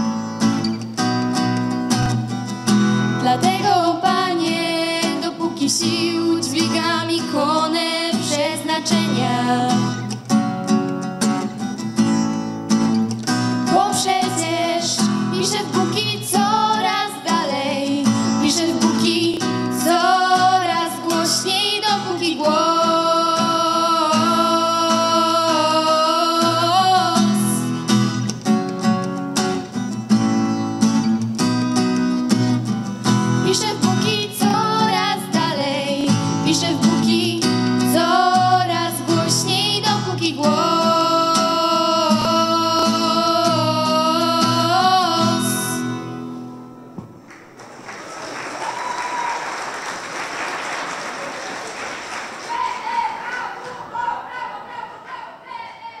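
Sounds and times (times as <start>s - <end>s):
strummed acoustic guitar: 0.0s - 47.0s
women singing together: 3.2s - 9.8s, 13.7s - 27.7s, 33.4s - 45.8s.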